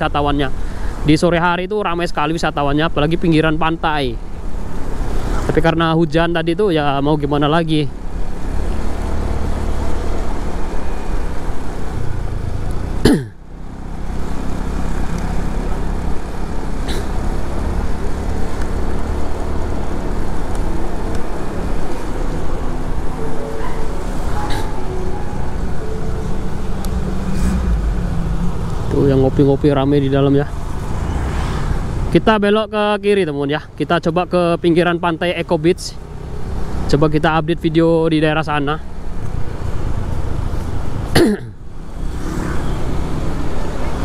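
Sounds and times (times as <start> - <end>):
scooter engine: 8.0 - 32.1.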